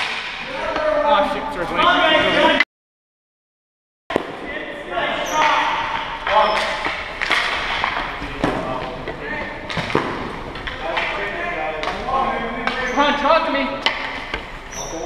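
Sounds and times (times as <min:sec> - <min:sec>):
hockey sticks clacking: 0:00.0 - 0:02.6, 0:05.1 - 0:15.0
players shouting in gymnasium: 0:00.0 - 0:02.6, 0:04.3 - 0:06.9.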